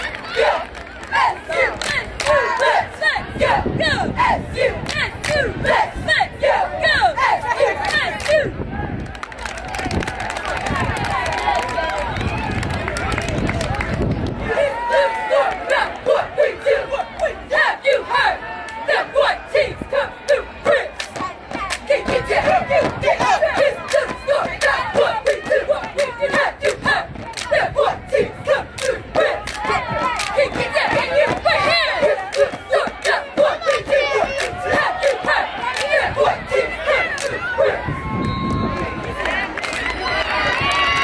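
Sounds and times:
cheerleaders chanting in unison: 0.0 - 8.8, 14.2 - 41.0
crowd noise: 0.0 - 41.0.

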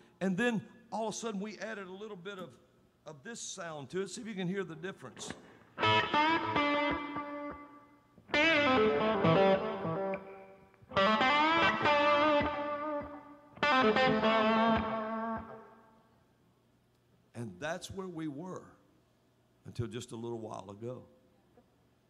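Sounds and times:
electric guitar with bent notes: 5.3 - 15.8.

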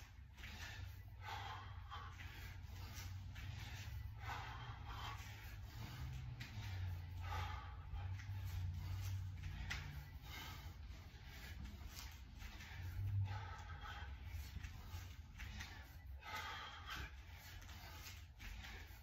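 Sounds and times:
man breathing heavily: 0.0 - 19.0
steady low hum: 0.0 - 19.0.

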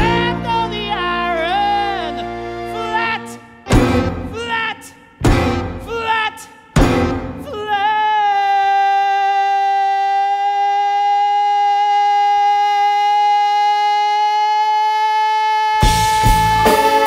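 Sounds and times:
band playing a loud chord: 3.7 - 4.4, 5.2 - 6.0, 6.8 - 7.6.

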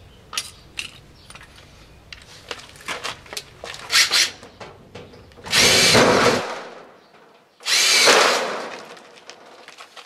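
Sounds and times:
cordless drill motor whine: 7.6 - 8.1.

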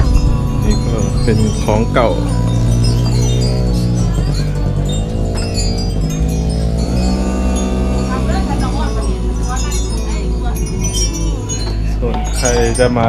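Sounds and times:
sustained low tones: 0.0 - 13.0
wind chimes ringing: 0.0 - 13.0.

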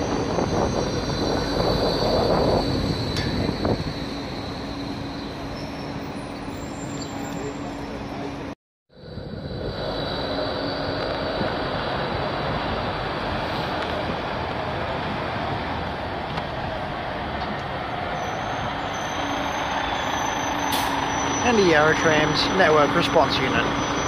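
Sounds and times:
street traffic: 0.0 - 24.0
tram moving along tracks: 0.0 - 24.0
truck diesel engine: 0.0 - 24.0.

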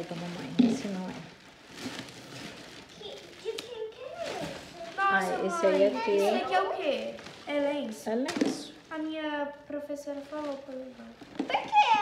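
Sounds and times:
plastic bag rustling: 0.0 - 9.2, 9.9 - 12.0.

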